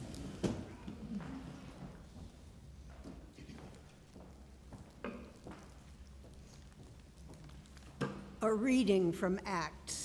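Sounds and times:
faint footsteps: 0.0 - 8.4.

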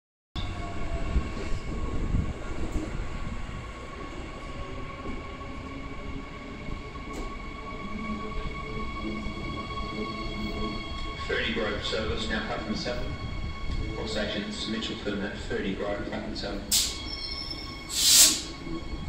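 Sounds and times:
train wheels rumbling on track: 0.4 - 15.5.

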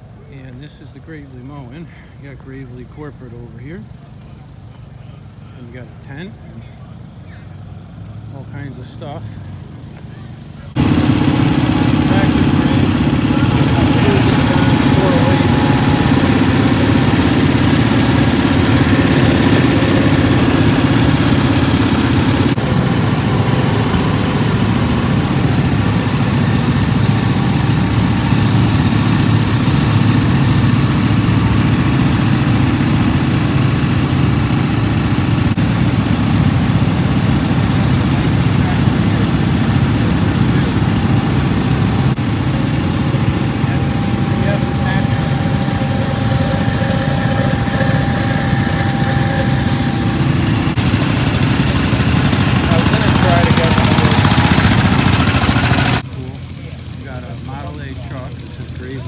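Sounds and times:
garden tractor engine running: 0.0 - 59.0.

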